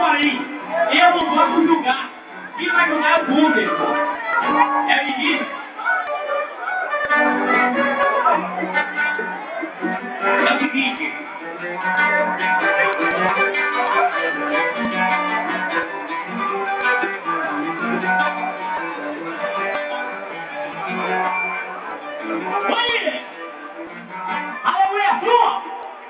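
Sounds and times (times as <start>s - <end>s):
samba music: 0.0s - 26.0s
plucked acoustic guitar: 0.2s - 25.6s.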